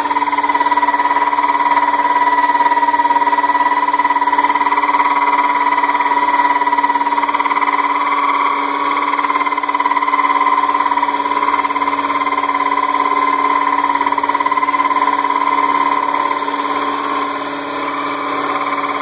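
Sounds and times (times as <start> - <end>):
power drill cutting glass bottle: 0.0 - 19.0.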